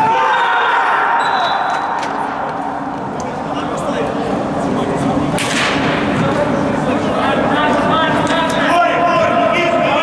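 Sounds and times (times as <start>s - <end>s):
hubbub of voices: 0.0s - 10.0s.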